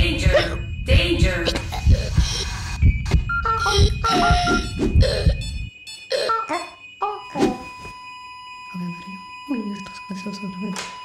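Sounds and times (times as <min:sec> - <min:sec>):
low thumps: 0:00.0 - 0:05.8
steady high electronic tone: 0:00.0 - 0:10.7.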